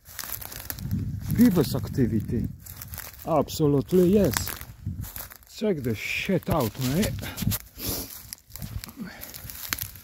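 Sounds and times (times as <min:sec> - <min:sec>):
quiet footsteps: 0:00.0 - 0:10.0.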